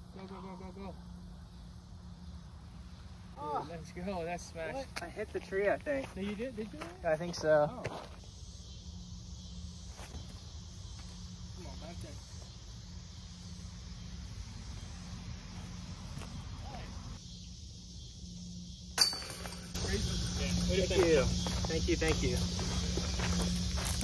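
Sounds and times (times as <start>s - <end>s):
high insect hiss: 0.0s - 24.0s.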